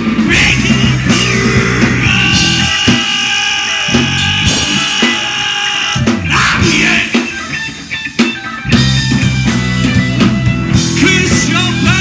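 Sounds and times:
live rock band instrumental: 0.0 - 12.0.

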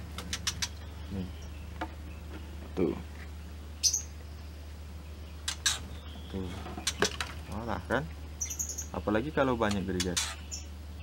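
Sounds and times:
bird chirping: 0.0 - 11.0
steady low hum: 0.0 - 11.0.

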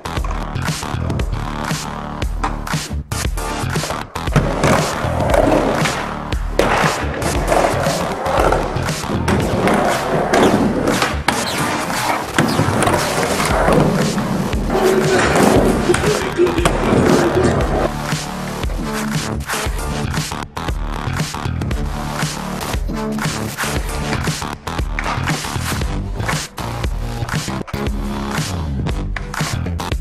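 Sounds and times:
music: 0.0 - 30.0
skateboard wheels rolling: 3.8 - 19.1.

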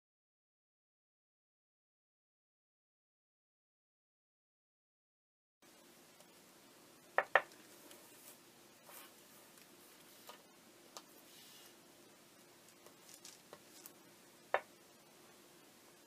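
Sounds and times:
faint steady hum: 5.6 - 16.0.

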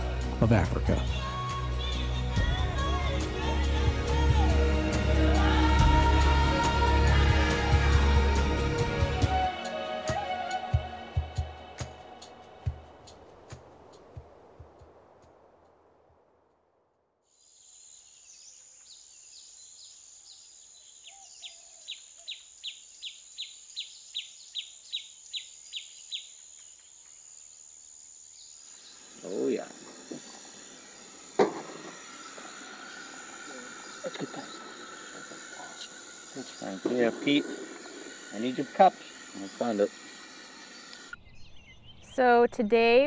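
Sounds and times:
insect chirring: 17.2 - 43.0.

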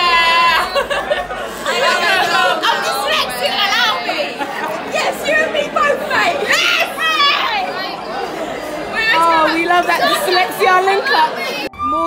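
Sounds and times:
women chattering and calling out: 0.0 - 12.0.

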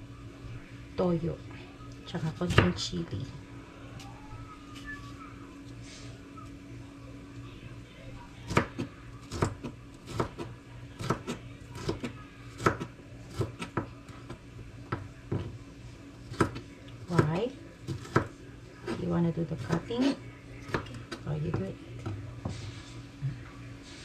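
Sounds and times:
low hum: 0.0 - 9.2.

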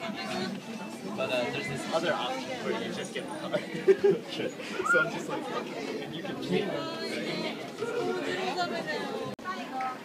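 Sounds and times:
hubbub of voices: 0.0 - 10.0.

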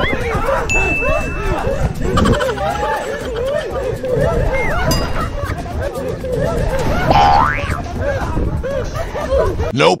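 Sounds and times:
people talking: 0.0 - 10.0
cartoon boing sound effect: 7.1 - 7.8.

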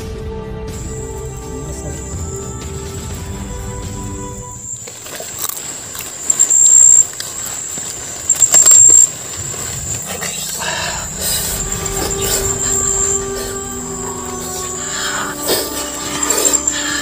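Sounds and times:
insect high-pitched drone: 0.8 - 17.0.

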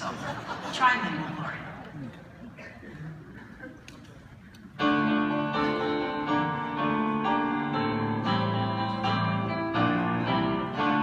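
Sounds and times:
room murmur in a hall: 0.0 - 11.0.

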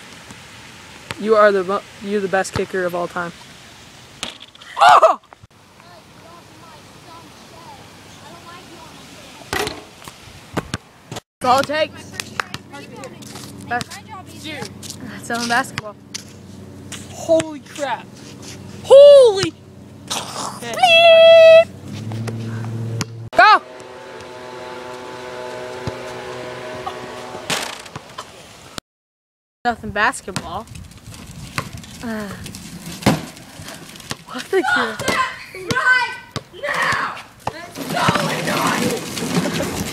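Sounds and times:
outdoor noise haze: 0.0 - 28.8, 29.7 - 39.9
distant boys calling out: 20.3 - 21.7, 34.3 - 39.0
steady mechanical hum: 21.6 - 28.8.

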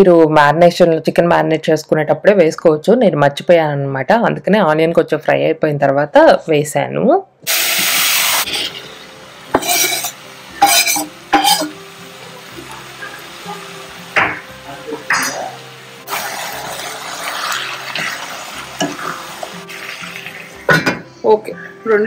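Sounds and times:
chicken sizzling in a pan: 7.5 - 21.0
wooden spatula scraping a pan: 9.6 - 11.7.

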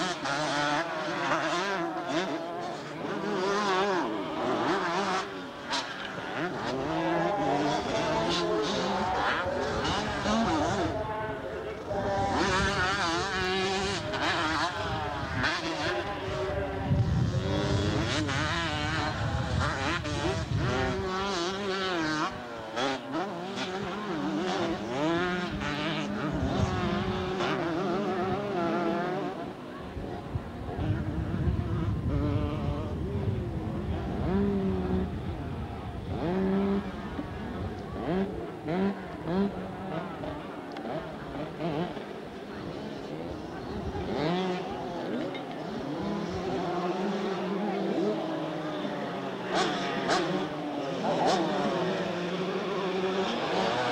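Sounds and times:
motocross bike engines revving: 0.0 - 53.9.

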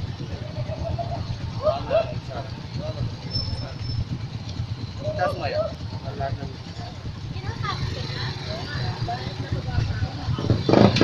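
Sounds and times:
motorcycle engine: 0.0 - 11.0
wind buffeting microphone: 0.0 - 11.0.

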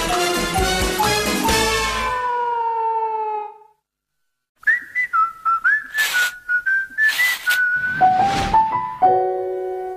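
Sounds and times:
person whistling a tune: 4.6 - 8.2
brief rushing noises: 7.0 - 8.8.

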